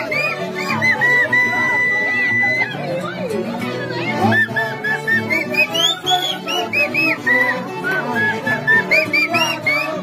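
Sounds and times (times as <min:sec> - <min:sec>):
accordion: 0:00.0 - 0:10.0
strummed guitars: 0:00.0 - 0:10.0.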